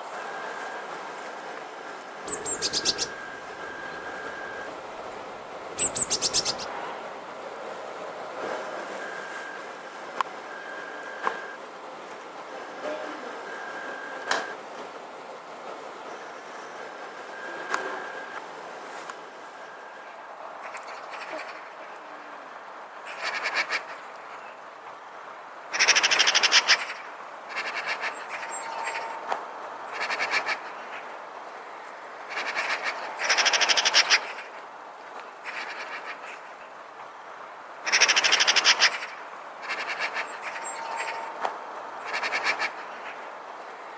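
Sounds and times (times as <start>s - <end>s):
magpie chattering: 2.3s - 4.5s, 5.7s - 6.7s, 25.7s - 29.1s, 32.3s - 34.5s, 37.9s - 41.4s, 42.0s - 43.2s.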